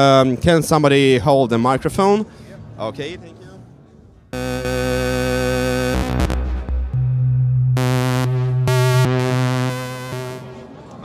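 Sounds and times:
low bass synth note: 4.4 - 10.8
synthesizer drone tones: 4.4 - 10.9.

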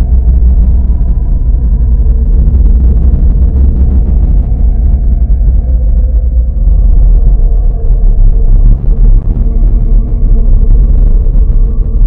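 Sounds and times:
dark ambient drone: 0.0 - 12.0.

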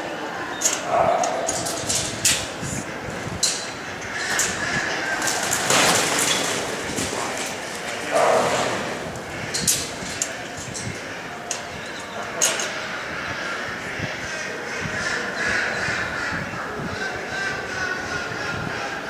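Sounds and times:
dog barking: 0.9 - 1.7, 8.1 - 8.7.

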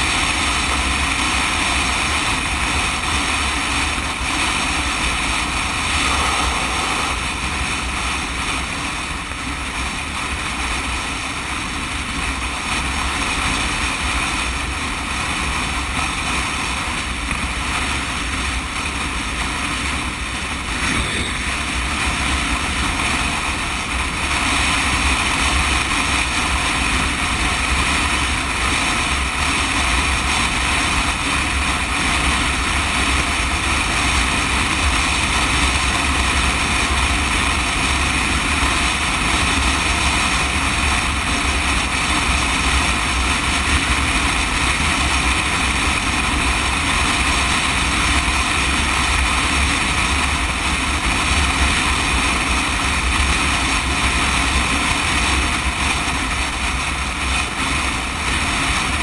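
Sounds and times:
motorcycle engine and tyre noise: 0.0 - 59.0
wind rush over microphone: 0.0 - 59.0.

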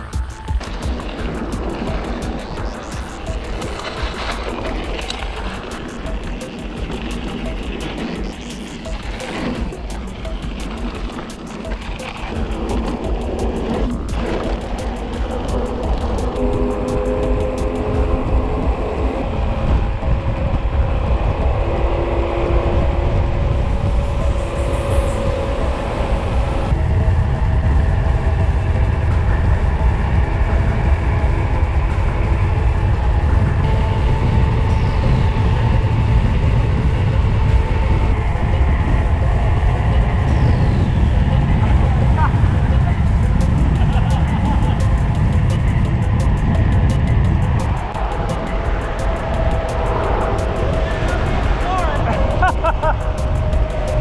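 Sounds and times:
music of held notes: 0.0 - 20.1
wind noise on microphone: 0.0 - 54.0.

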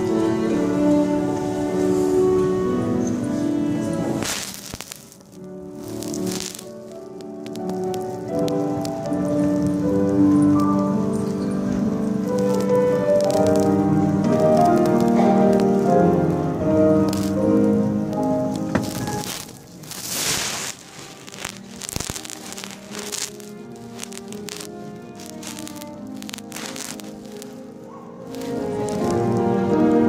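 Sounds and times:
crackling hiss: 0.0 - 30.0
sharp clicks: 12.3 - 13.7, 21.2 - 27.6.

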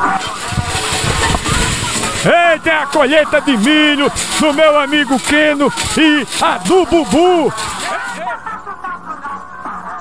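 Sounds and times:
machine running with rushing noise: 0.0 - 8.2.

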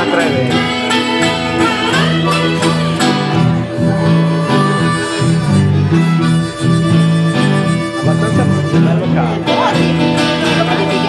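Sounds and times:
blues harmonica: 0.0 - 11.0
resonator guitar: 0.0 - 11.0.

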